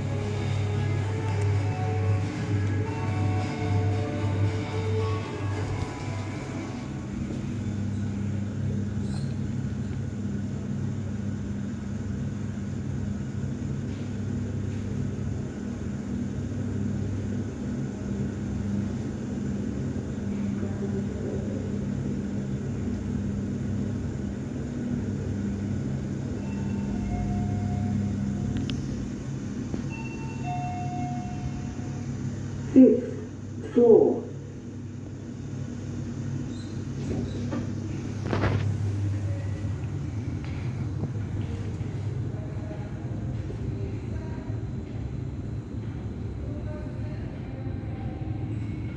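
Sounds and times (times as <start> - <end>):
lift hum and rumble: 0.0 - 48.9.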